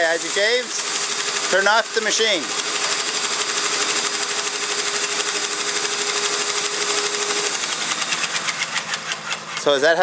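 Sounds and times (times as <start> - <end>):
paint sprayer pump chattering: 0.0 - 10.0
paint sprayer whine: 0.0 - 10.0.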